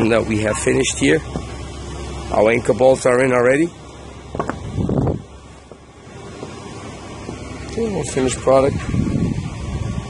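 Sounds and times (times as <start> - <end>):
low outdoor rumble: 0.0 - 10.0
wind on microphone: 4.4 - 5.3, 8.6 - 10.0.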